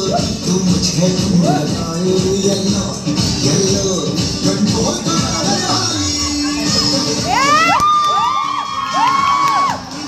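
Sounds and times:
dance music from loudspeaker: 0.0s - 10.0s
children cheering and whooping: 6.6s - 10.0s.

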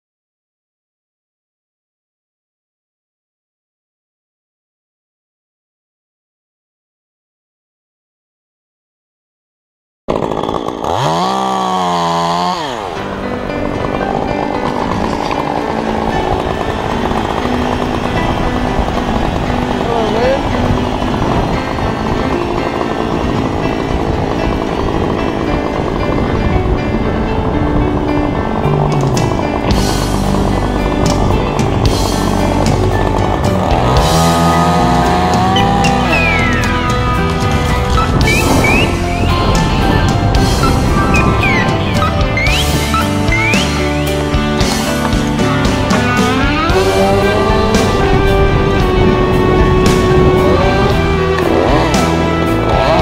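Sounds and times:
chainsaw revving and cutting wood: 10.1s - 53.0s.

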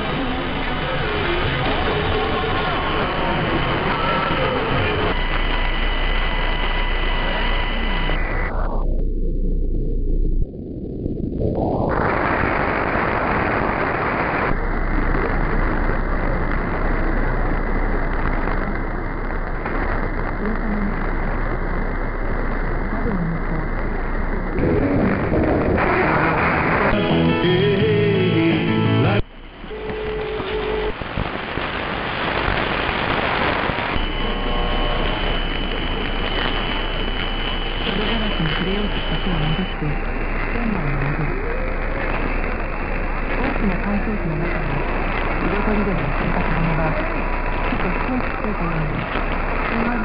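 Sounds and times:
radio static: 0.0s - 9.1s, 9.9s - 50.0s
thin radio music: 24.4s - 50.0s.

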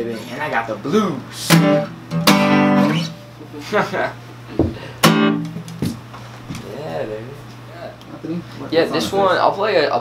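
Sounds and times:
acoustic guitar chord strummed: 1.4s - 3.3s, 5.0s - 5.9s.

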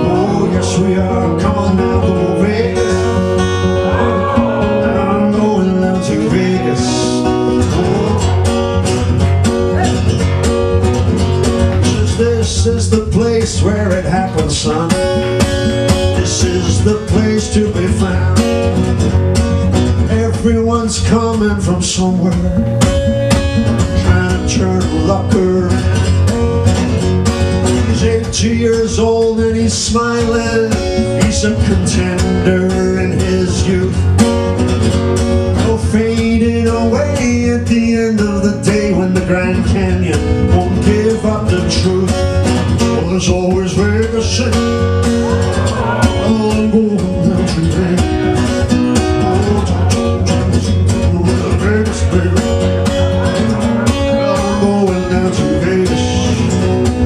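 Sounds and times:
man singing: 0.0s - 9.0s, 11.7s - 19.0s, 19.8s - 26.5s, 27.6s - 34.8s, 35.4s - 57.0s
acoustic guitar strumming: 0.0s - 57.0s.

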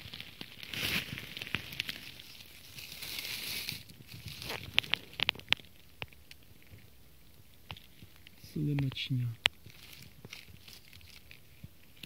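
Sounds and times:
dry leaves rustling: 0.0s - 6.9s, 7.6s - 12.0s
twigs snapping: 0.0s - 12.0s.

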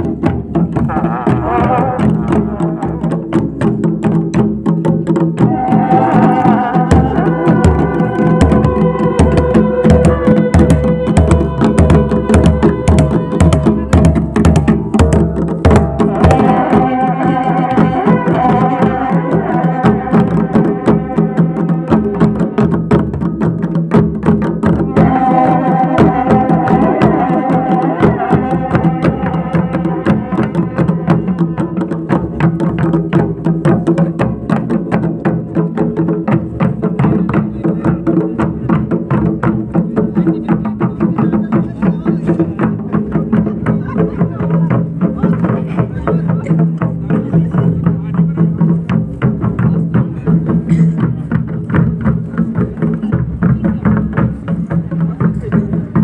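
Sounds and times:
drums beating fast rhythm: 0.0s - 56.0s
brass horns holding notes: 5.5s - 13.4s, 16.0s - 22.6s, 24.8s - 31.8s.

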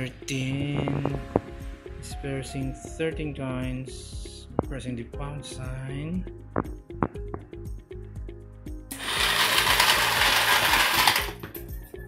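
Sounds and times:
background music: 0.0s - 12.0s
coin hopper ejecting coins: 8.9s - 11.7s.

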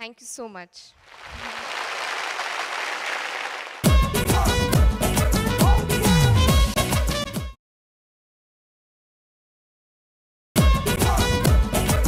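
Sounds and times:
audience applauding: 1.0s - 4.0s.

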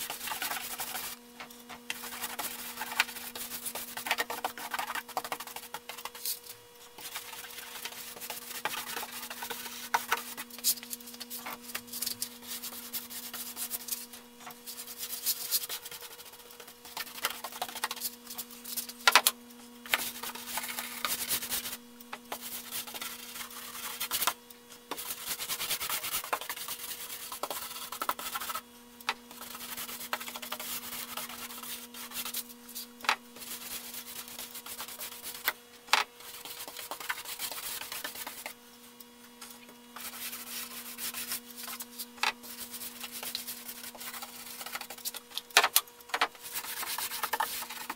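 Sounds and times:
steady low hum: 0.0s - 47.9s.

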